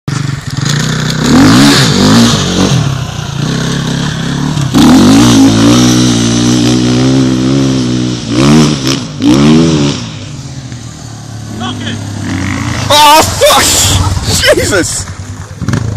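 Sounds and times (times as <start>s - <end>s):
dirt bike engine revving: 0.1s - 15.9s.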